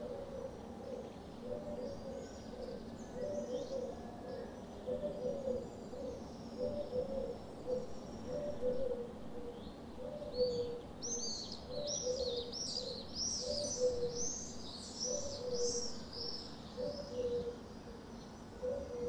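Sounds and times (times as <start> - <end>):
dove cooing: 0.0 - 14.3, 15.0 - 19.0
small birds chirping: 9.5 - 19.0.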